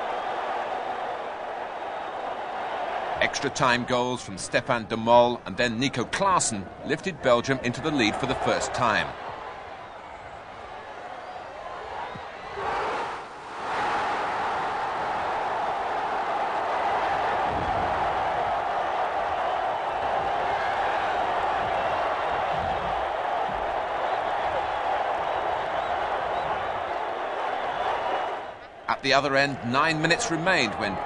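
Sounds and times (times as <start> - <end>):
stadium crowd cheering: 0.0 - 31.0.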